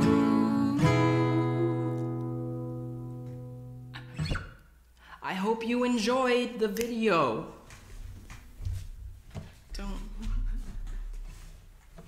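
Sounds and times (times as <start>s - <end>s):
acoustic guitar chord ringing: 0.0s - 4.4s.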